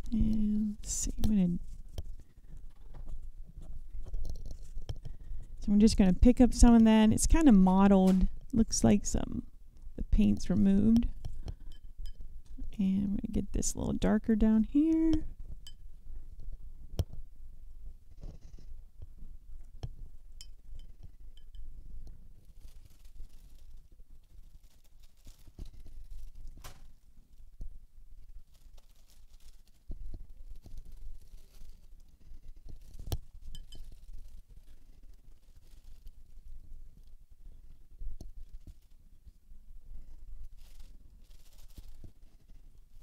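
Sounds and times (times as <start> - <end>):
soft brushing: 22.2 - 43.0.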